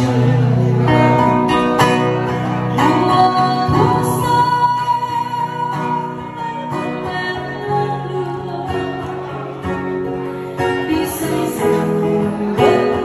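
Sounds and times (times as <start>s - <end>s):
acoustic guitar: 0.0s - 13.0s
woman singing into microphone: 2.7s - 13.0s.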